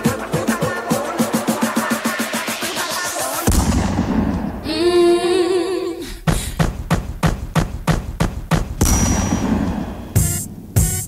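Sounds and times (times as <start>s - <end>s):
hissing burst: 0.0s - 5.1s
music mix: 0.0s - 5.6s, 6.8s - 11.0s
sharp percussive hits: 3.5s - 4.7s, 6.3s - 11.0s.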